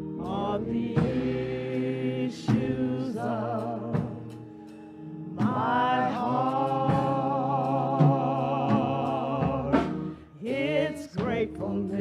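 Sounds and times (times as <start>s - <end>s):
gospel singers: 0.0s - 12.0s
held keyboard chord: 0.0s - 12.0s.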